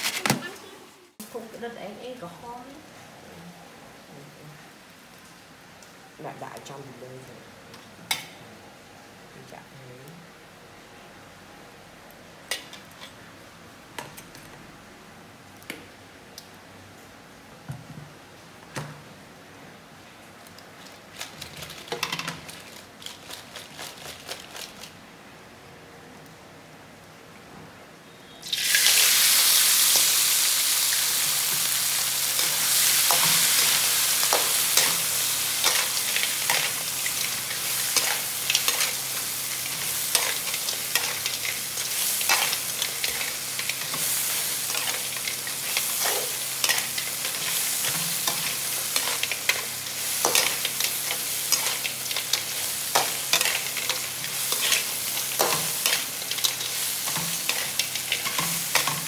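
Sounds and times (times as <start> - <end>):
crabs sizzling in a wok: 0.0 - 3.0, 3.7 - 8.4, 9.0 - 15.4, 18.5 - 25.6, 28.2 - 59.0.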